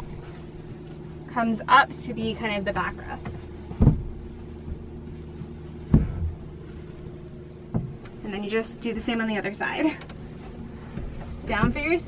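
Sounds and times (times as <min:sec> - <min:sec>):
steady low hum: 0:00.0 - 0:12.0
cushion thump: 0:03.8 - 0:04.2, 0:05.9 - 0:06.5, 0:07.7 - 0:08.0.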